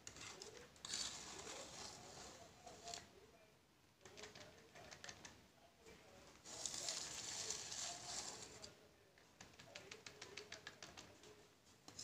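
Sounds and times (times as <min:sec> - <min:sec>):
whisk scraping cake batter: 0:00.0 - 0:03.1, 0:06.5 - 0:08.8.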